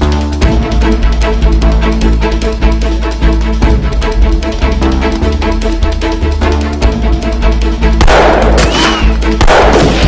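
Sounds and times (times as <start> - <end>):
film background music: 0.0 - 10.0
loud gunshots: 8.0 - 10.0.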